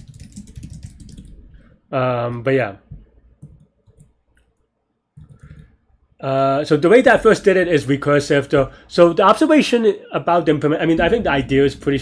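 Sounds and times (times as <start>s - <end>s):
computer mouse clicks: 3.4s - 5.8s.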